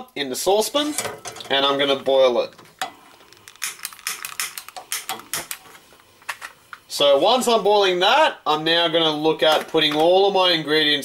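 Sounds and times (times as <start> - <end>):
stove spark igniter clicking: 3.6 - 5.6.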